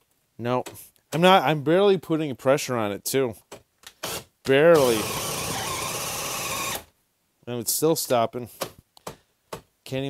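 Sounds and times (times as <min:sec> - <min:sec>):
drill boring into wood: 0:04.0 - 0:06.9.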